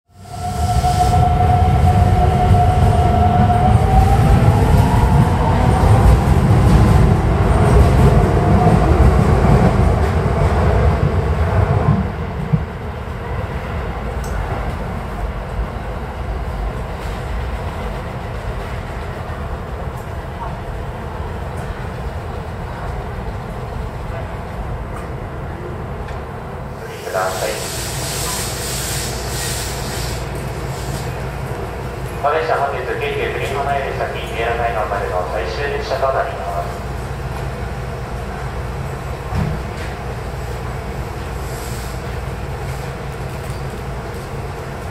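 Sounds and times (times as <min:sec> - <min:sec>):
train rumble: 0:00.1 - 0:44.9.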